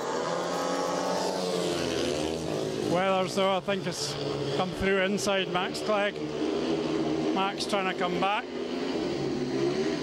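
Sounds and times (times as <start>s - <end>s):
motorbike engines racing: 0.0s - 10.0s.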